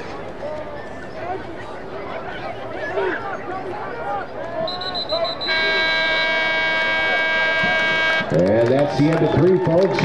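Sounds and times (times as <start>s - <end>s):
crowd chatter: 0.0s - 10.0s
scoreboard horn beeps and blast: 5.4s - 8.3s.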